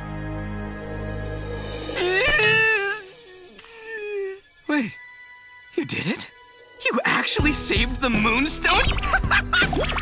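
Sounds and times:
cartoon background music: 0.0s - 10.0s
wavering vocal cry: 1.9s - 4.4s.

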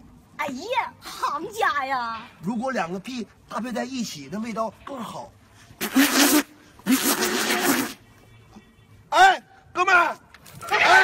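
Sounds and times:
raspy hissing farts: 5.8s - 8.0s.

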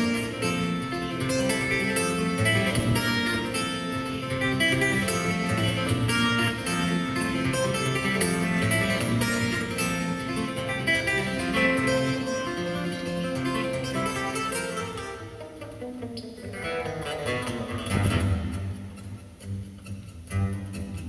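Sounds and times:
fingerstyle acoustic guitar: 0.0s - 21.0s.

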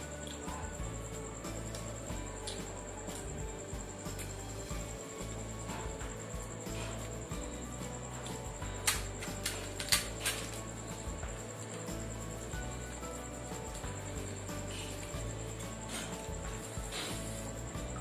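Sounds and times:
background music: 0.0s - 18.0s
high-pitched whine: 0.0s - 18.0s.

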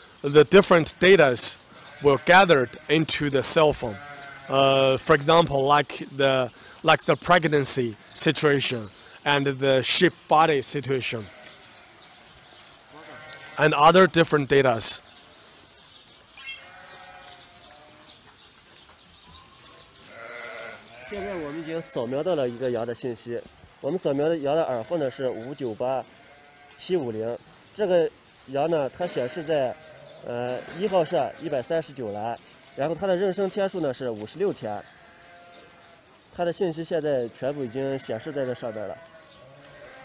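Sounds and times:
sheep bleating: 1.8s - 5.0s, 11.1s - 12.1s, 12.9s - 13.9s, 16.4s - 18.2s, 20.0s - 22.8s, 26.2s - 26.9s, 29.0s - 33.0s, 34.8s - 36.1s, 37.5s - 40.0s.

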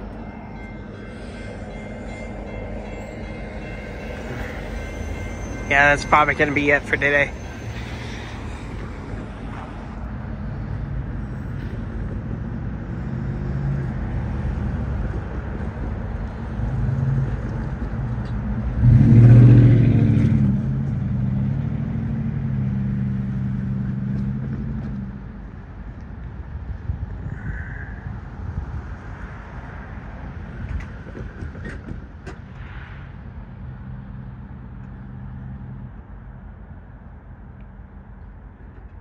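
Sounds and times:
engine rumble: 0.0s - 39.0s.

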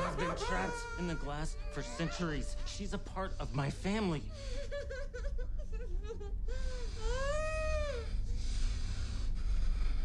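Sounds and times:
high whining cry: 0.0s - 2.2s
steady low rumble: 0.0s - 10.0s.

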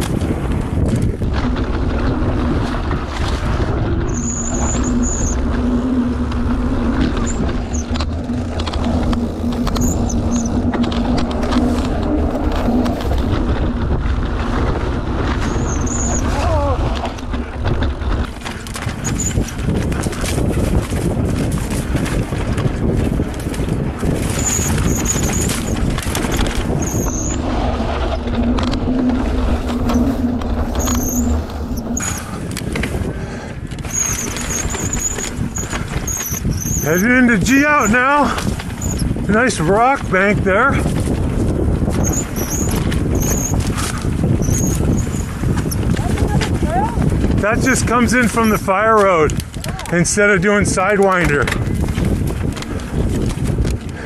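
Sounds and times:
bike tyres rumbling over dirt: 0.0s - 54.0s
wind buffeting microphone: 0.0s - 54.0s
disc brake squeals: 4.1s - 5.4s, 15.4s - 16.3s, 26.8s - 27.4s, 33.9s - 37.0s, 38.8s - 39.1s, 42.0s - 43.6s, 44.4s - 45.8s.

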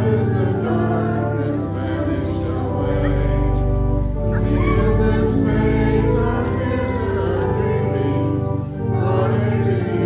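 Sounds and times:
organ chords: 0.0s - 10.0s
voices singing a hymn: 0.0s - 10.0s.

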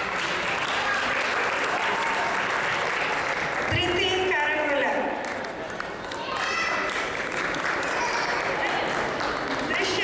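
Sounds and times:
audience applause: 0.0s - 3.8s, 5.2s - 10.0s.

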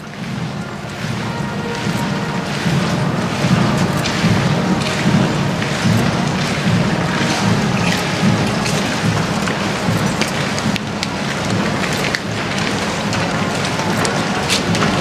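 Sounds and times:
horses' hooves on gravel: 0.0s - 15.0s
marching boots on gravel: 0.0s - 15.0s.

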